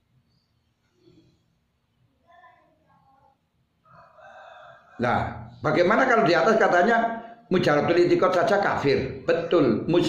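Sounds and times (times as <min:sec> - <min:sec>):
distant rooster crowing: 0:03.8 - 0:05.6.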